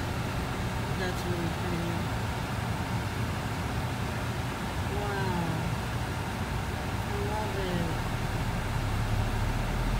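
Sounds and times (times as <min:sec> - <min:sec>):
car engine rumble: 0:00.0 - 0:09.9
road noise inside car: 0:00.0 - 0:09.9.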